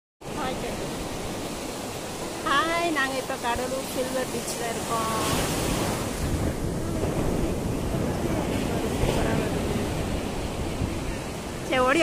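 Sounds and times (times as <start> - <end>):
surf breaking on a beach: 0.2 - 12.0.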